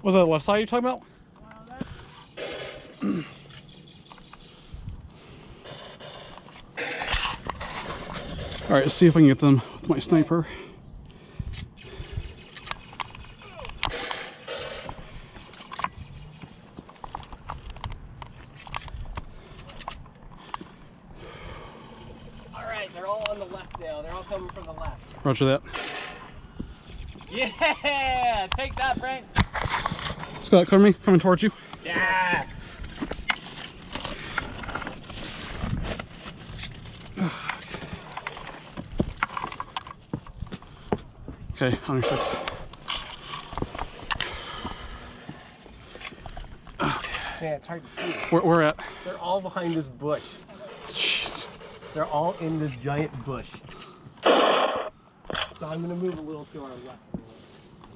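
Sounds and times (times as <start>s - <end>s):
camera handling rumble: 12.5s - 21.1s, 29.4s - 30.4s, 32.6s - 40.8s
footsteps over boulders and brush: 31.7s - 47.0s.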